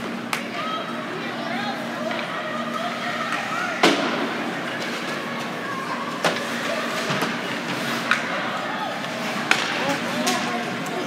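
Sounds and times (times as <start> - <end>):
arena background noise: 0.0 - 11.0
spectators chatting: 0.0 - 11.0
hockey sticks and puck clacking: 6.2 - 11.0.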